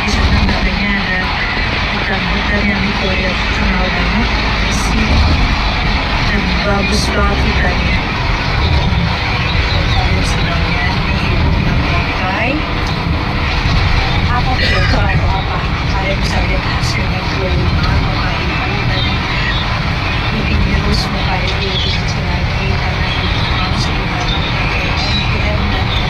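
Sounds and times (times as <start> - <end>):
woman talking: 0.0 - 5.6, 6.2 - 8.2, 9.7 - 12.7, 14.2 - 19.6, 20.3 - 26.0
vehicle cabin road rumble: 0.0 - 26.0.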